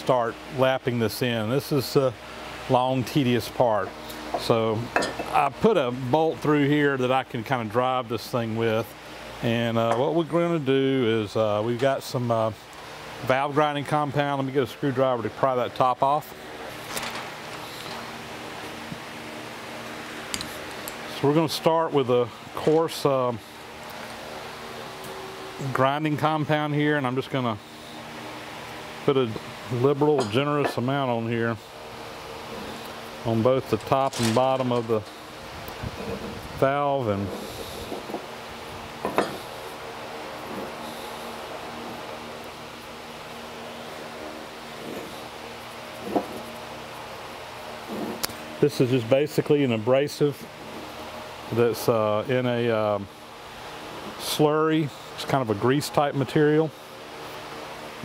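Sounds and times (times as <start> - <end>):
shop fan humming: 0.0 - 58.0.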